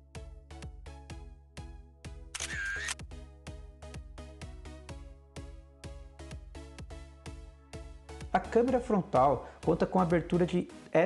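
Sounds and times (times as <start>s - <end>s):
camera shutter sound effect: 2.3s - 3.0s.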